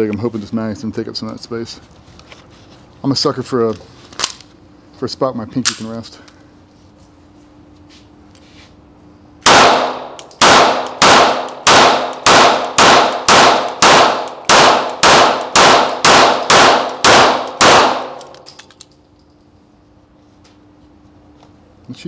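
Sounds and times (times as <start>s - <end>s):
pistol shots ringing indoors: 9.4s - 18.7s.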